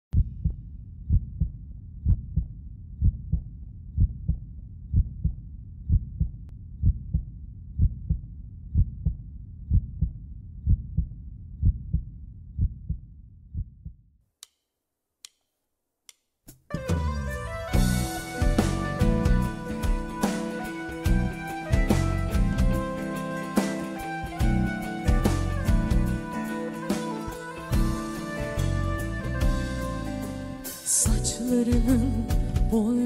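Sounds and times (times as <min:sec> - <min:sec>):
heartbeat double thump: 0:00.1 - 0:14.0.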